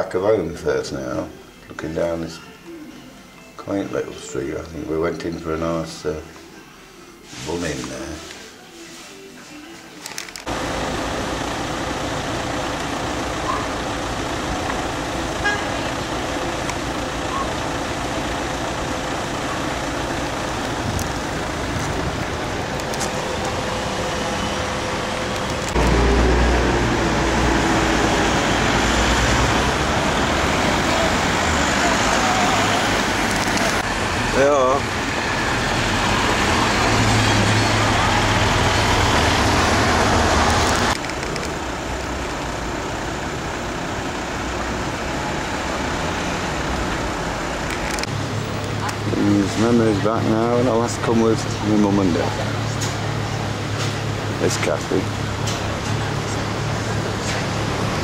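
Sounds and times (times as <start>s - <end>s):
heavy engine rumble: 10.4s - 58.0s
road traffic hum: 10.4s - 58.0s.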